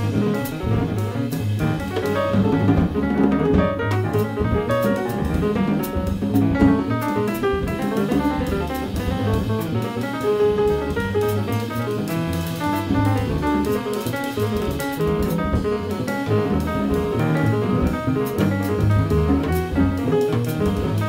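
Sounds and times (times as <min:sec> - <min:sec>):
acoustic piano: 0:00.0 - 0:21.0
double bass: 0:00.0 - 0:21.0.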